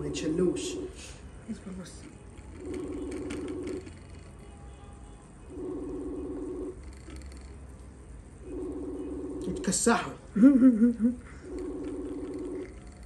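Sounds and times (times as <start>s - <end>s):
phone ringback tone: 2.4s - 4.4s, 5.5s - 7.6s, 8.4s - 9.8s, 11.3s - 13.0s.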